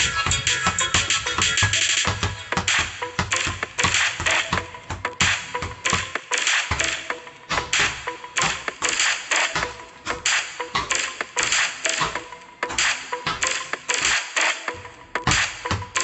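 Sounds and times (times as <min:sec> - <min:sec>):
background music with beat: 0:00.0 - 0:16.0
basketballs dribbled on concrete: 0:00.0 - 0:16.0.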